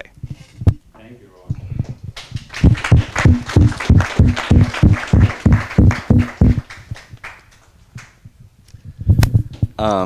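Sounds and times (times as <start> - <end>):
audience applause: 2.2 - 7.6.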